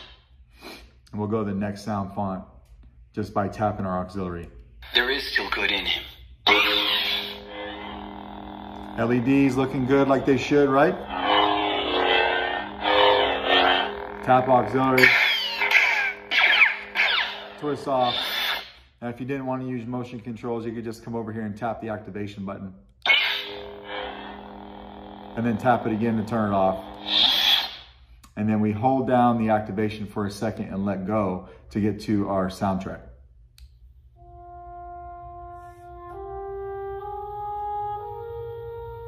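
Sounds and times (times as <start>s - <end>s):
toy lightsaber electric hum: 4.8s - 18.8s, 23.0s - 28.0s.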